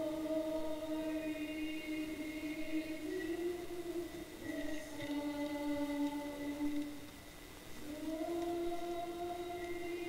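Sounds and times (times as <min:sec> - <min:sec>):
voices singing worship song: 0:00.0 - 0:10.0.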